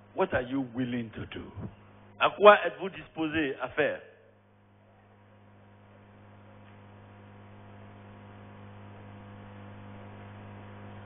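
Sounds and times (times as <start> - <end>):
electrical hum with hiss: 0.0 - 11.0.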